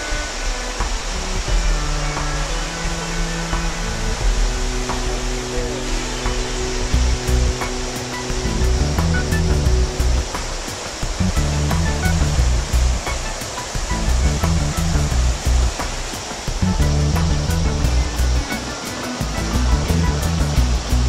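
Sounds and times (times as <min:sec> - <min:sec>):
background music with beat and bass: 0:00.0 - 0:21.0
whitewater rapids rushing: 0:00.0 - 0:21.0.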